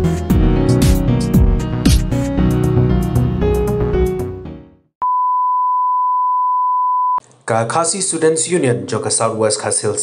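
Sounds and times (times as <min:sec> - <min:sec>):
steady test tone beep: 0:05.0 - 0:07.2.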